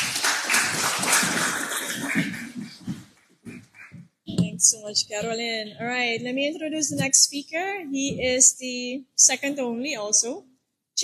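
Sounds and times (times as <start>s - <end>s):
audience applause: 0.0s - 2.8s.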